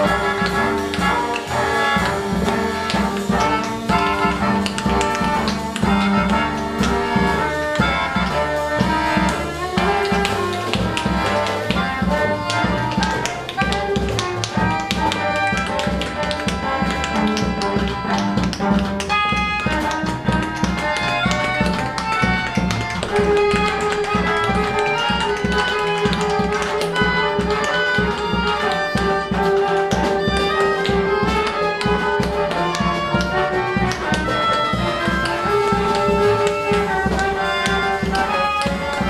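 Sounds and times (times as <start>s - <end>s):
bowed cello: 0.0s - 39.0s
drums and percussive taps: 0.0s - 39.0s.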